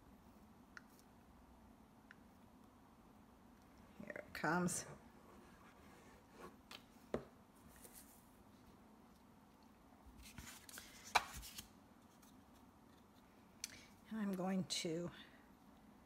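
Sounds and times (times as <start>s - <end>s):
paper rustling: 10.2s - 13.2s.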